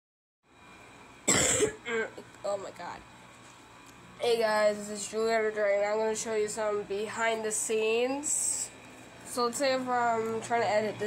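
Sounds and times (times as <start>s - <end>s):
person coughing: 1.3s - 2.2s.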